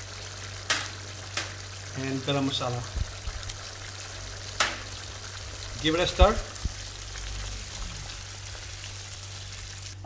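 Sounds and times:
sauce simmering in a pan: 0:00.0 - 0:10.0.

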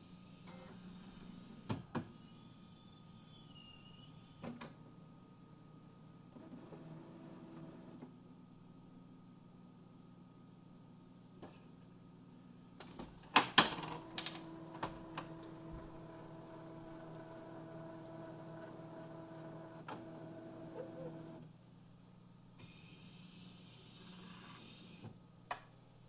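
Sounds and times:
printer motor humming: 0:13.9 - 0:21.4.

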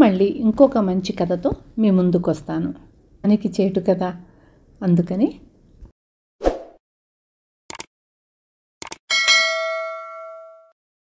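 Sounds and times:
bright bell ding: 0:09.1 - 0:10.8.

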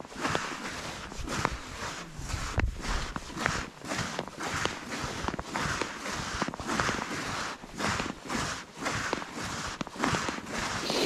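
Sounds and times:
boots crunching on thin ice: 0:00.1 - 0:11.0.

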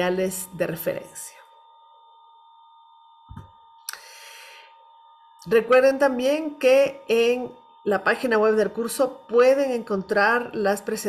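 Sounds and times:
soft low thump: 0:03.3 - 0:03.6.

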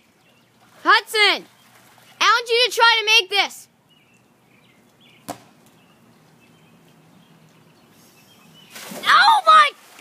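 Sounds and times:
faint outdoor background: 0:00.0 - 0:10.0
person splashing into pool: 0:08.7 - 0:10.0.

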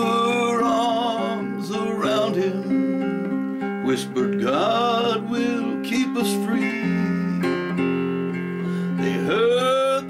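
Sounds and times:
slide guitar fill: 0:00.0 - 0:10.0.

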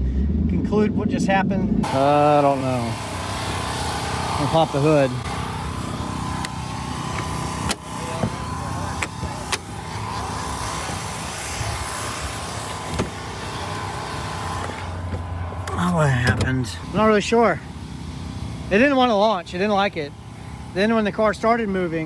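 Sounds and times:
car engine idling: 0:00.0 - 0:22.0
car hood clicks and knocks: 0:12.8 - 0:13.2.

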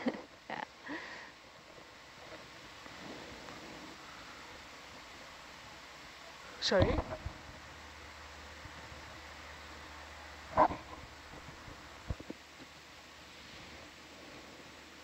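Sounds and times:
low steady hiss: 0:00.0 - 0:15.0.

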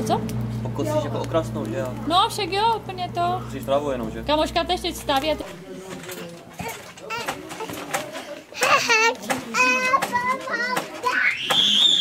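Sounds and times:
children calling: 0:06.0 - 0:12.0.

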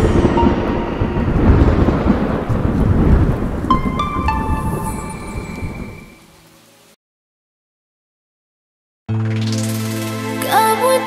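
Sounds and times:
thunder rumbling: 0:00.0 - 0:06.4
rain hissing: 0:00.0 - 0:07.0.

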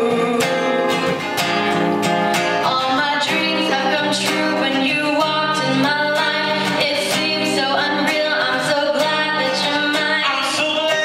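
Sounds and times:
woman singing a ballad: 0:00.0 - 0:01.1, 0:02.6 - 0:11.0
acoustic guitar chords: 0:00.0 - 0:11.0.

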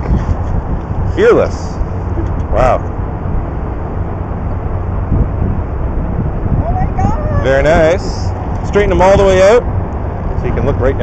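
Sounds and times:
wind rushing across microphone: 0:00.0 - 0:11.0.

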